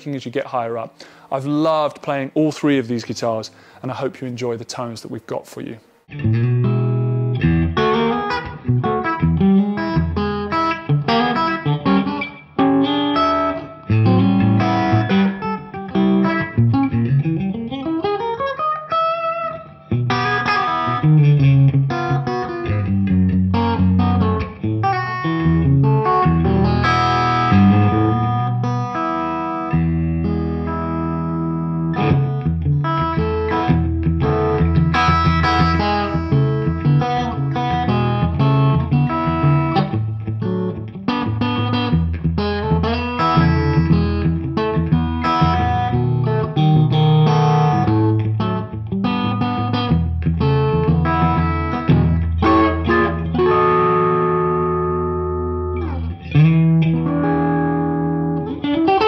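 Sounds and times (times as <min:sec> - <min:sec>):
electric guitar notes and chords: 0:06.1 - 0:59.0.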